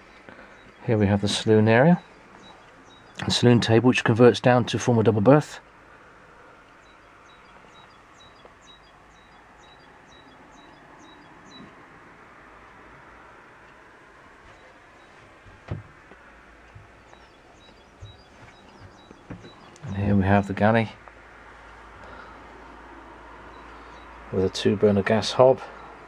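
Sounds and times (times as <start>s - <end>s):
small bird chirping: 0.0s - 3.6s, 6.7s - 11.8s, 14.3s - 21.2s, 23.4s - 24.6s.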